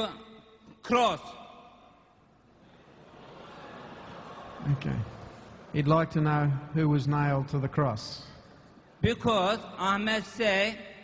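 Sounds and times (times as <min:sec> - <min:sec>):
man speaking into a microphone: 0:04.6 - 0:11.0.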